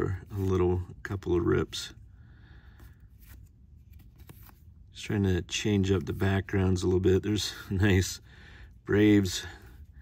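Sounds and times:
trading cards sliding: 2.7 - 4.9.

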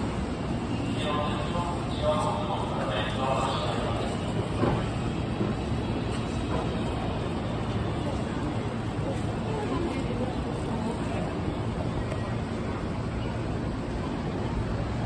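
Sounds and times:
passengers bustling: 0.0 - 15.0
train low hum: 0.0 - 15.0.

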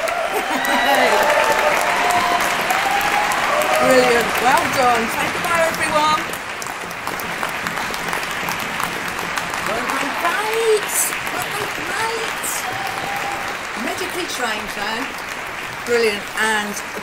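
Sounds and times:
crowd cheering and calling: 0.0 - 17.0
crowd clapping: 0.0 - 17.0.

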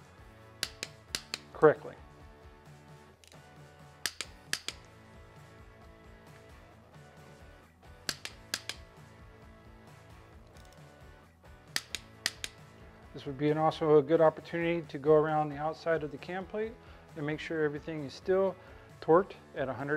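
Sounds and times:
quiet background music: 0.0 - 19.9
torque wrench clicking: 0.6 - 1.5, 4.0 - 4.9, 8.1 - 8.9, 11.8 - 12.6.

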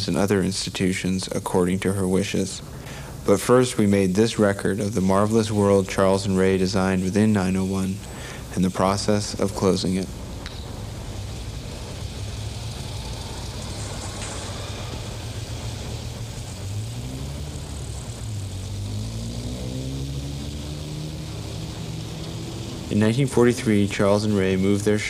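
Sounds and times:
vehicle engine rumbling: 1.3 - 25.0.

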